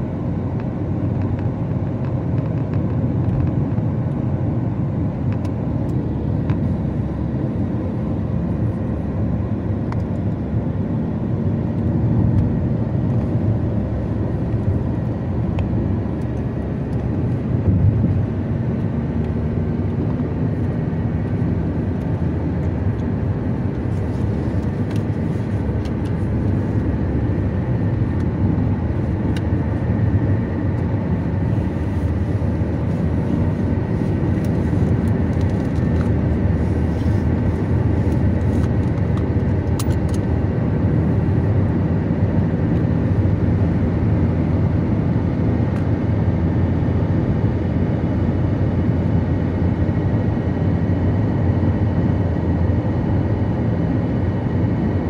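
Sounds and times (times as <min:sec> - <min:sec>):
car driving at highway speed: 0:00.0 - 0:55.0.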